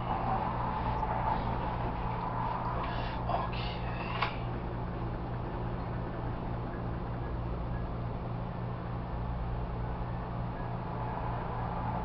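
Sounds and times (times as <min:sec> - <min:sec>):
fan humming and rushing: 0:00.0 - 0:12.0.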